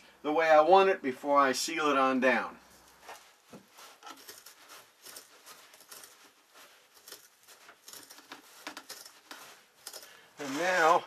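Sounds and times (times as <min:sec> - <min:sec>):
scissors snipping carpet: 0:04.1 - 0:10.2.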